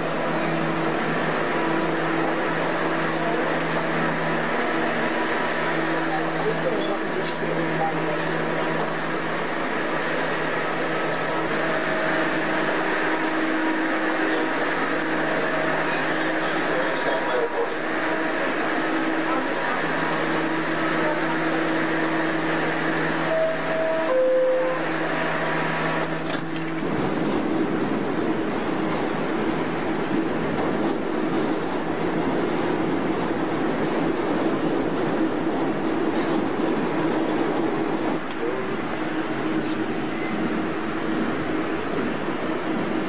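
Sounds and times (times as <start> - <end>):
subway train running: 0.0 - 43.0.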